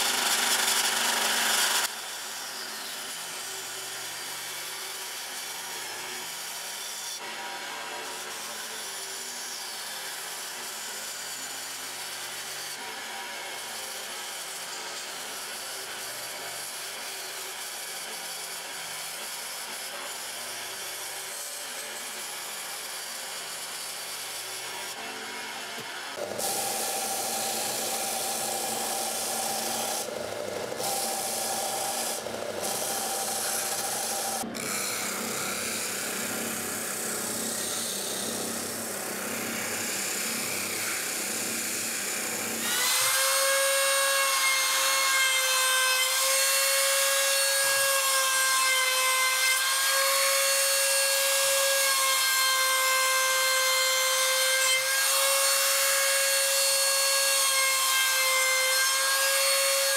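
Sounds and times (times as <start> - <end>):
band saw cutting: 0.0 - 59.9
router whining: 0.0 - 59.9
belt sander sanding: 22.2 - 48.0.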